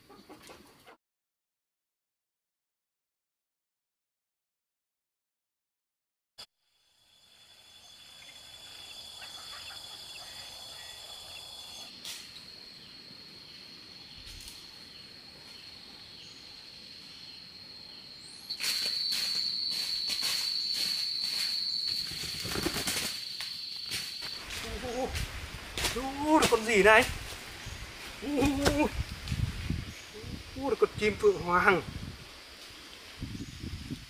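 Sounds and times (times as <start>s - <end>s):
insects buzzing: 6.6s - 34.0s
bird wings flapping: 21.9s - 24.7s.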